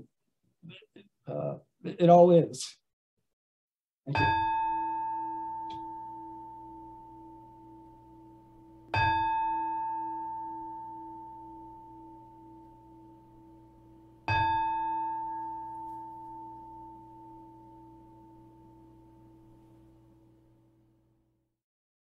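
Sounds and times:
singing bowl bell ringing: 4.2 - 19.6.

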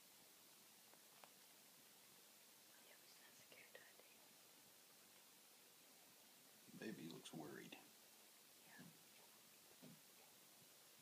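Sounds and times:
small ticks: 0.9 - 1.6.

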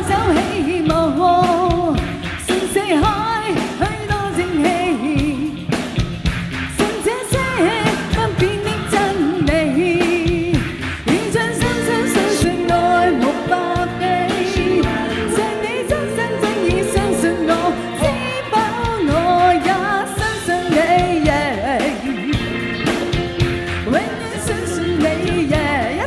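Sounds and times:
woman singing into microphone: 0.0 - 5.6, 6.7 - 22.5, 23.8 - 26.0
pop backing track: 0.0 - 26.0.

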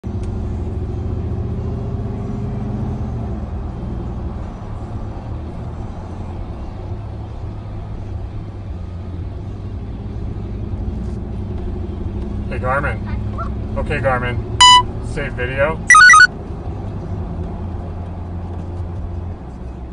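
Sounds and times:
vehicle engine and road noise: 0.0 - 19.9.

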